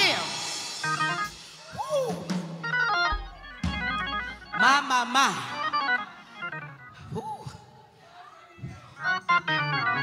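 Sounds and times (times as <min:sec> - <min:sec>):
organ playing chords: 0:00.6 - 0:07.7, 0:09.0 - 0:10.0
deep organ bass note: 0:02.7 - 0:04.6.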